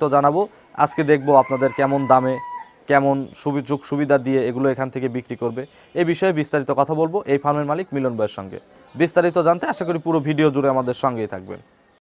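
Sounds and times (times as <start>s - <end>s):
man speaking: 0.0s - 11.7s
rooster crowing: 0.8s - 2.9s.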